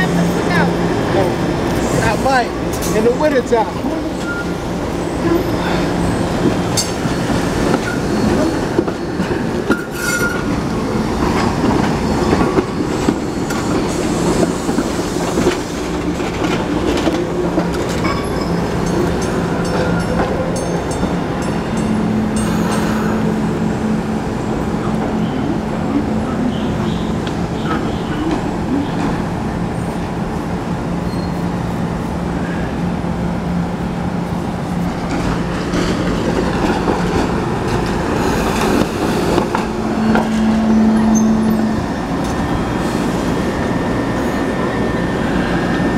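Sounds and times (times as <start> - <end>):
wheel squeals: 31.0 - 31.5, 39.9 - 43.0.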